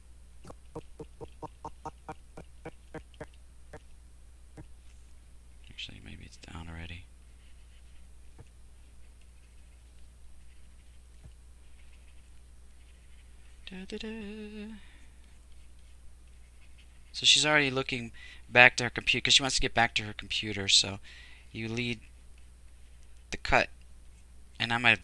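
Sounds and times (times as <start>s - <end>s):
low steady background hum: 0.0s - 25.0s
person humming: 0.5s - 3.2s.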